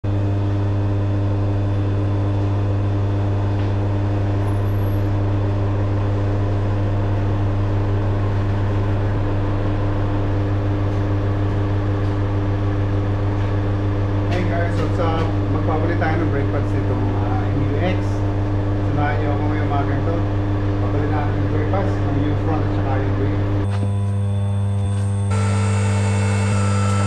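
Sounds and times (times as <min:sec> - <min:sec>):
steady low hum: 0:00.1 - 0:27.0.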